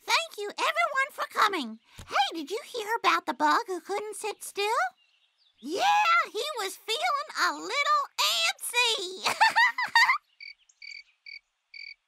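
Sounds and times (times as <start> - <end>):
cricket chirping: 10.4 - 12.0.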